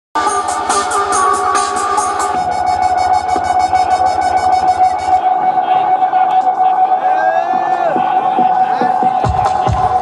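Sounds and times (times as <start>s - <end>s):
dub music over sound system: 0.2s - 10.0s.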